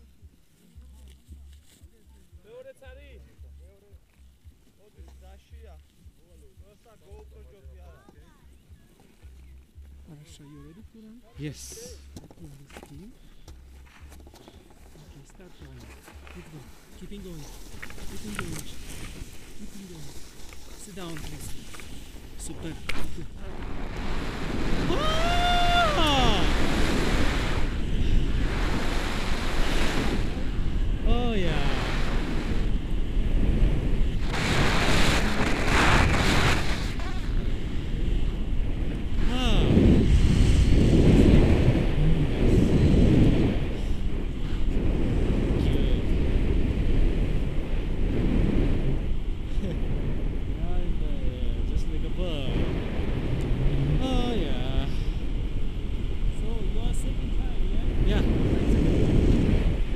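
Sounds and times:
wind roaring over microphone: 0:15.9 - 0:59.9.

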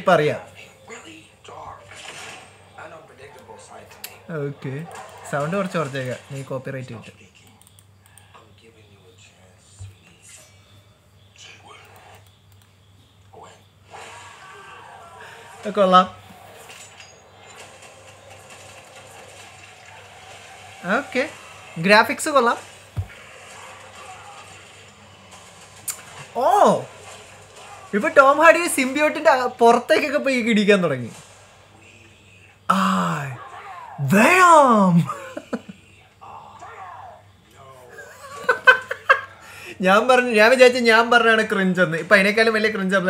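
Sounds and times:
faint audio from laptop speakers: 0:00.0 - 0:41.2.

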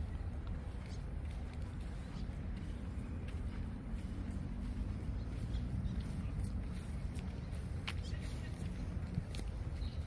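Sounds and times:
footsteps on paved path: 0:00.0 - 0:10.0
steady low rumble: 0:00.0 - 0:10.0.

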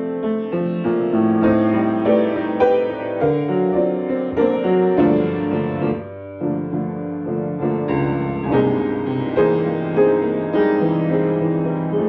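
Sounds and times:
slow blues piano: 0:00.0 - 0:12.0.

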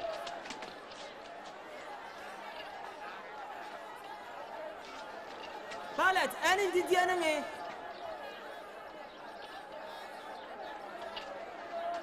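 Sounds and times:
crowd calling out: 0:00.0 - 0:12.0.

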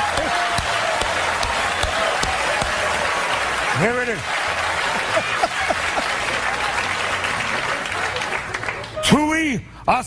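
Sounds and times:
audience applauding: 0:00.0 - 0:09.2.

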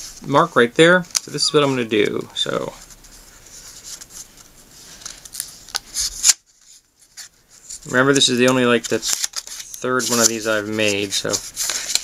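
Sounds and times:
paper rustling and crinkling: 0:00.0 - 0:12.0.

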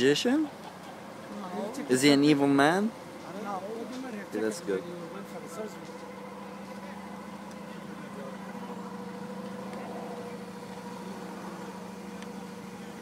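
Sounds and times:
engine hum: 0:00.0 - 0:13.0.

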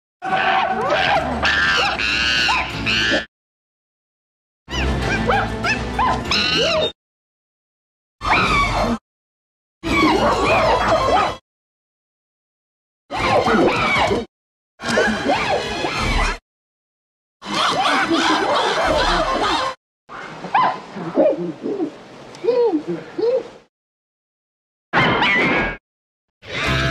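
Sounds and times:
cartoon creature screeching: 0:00.2 - 0:03.3, 0:04.7 - 0:07.0, 0:08.2 - 0:09.0, 0:13.1 - 0:14.3, 0:14.9 - 0:16.4, 0:26.5 - 0:26.9.

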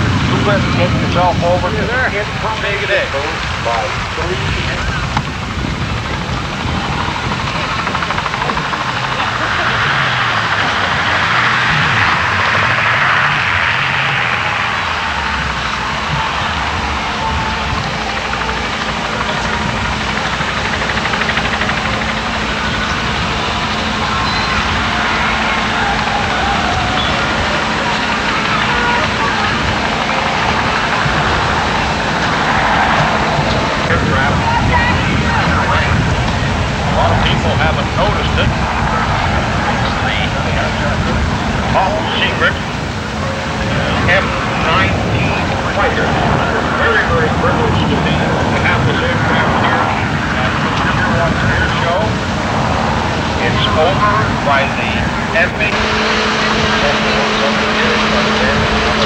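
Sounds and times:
indistinct voices: 0:00.0 - 0:59.0
low outdoor rumble: 0:00.0 - 0:59.0.

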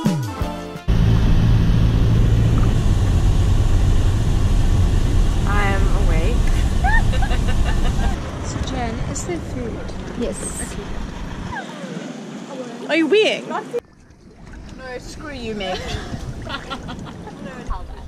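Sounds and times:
road rumble inside vehicle: 0:00.9 - 0:12.6
women talking: 0:05.5 - 0:10.9, 0:11.5 - 0:13.8, 0:14.8 - 0:18.0.

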